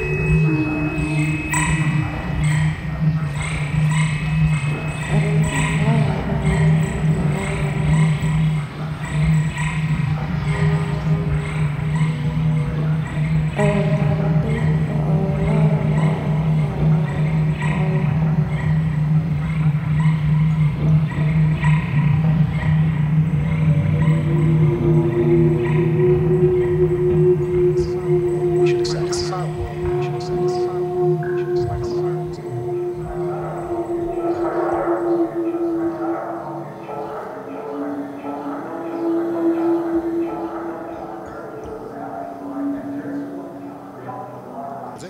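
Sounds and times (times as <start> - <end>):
low pulsing guitar drone: 0.0 - 45.0.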